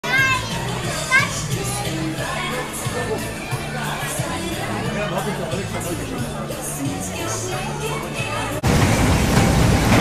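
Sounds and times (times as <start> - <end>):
children calling out: 0.0 - 3.4
background chatter: 0.0 - 8.8
music: 0.0 - 10.0.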